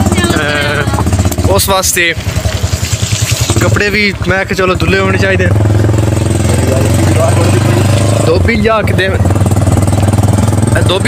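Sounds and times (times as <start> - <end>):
engine running steadily: 0.0 - 11.0.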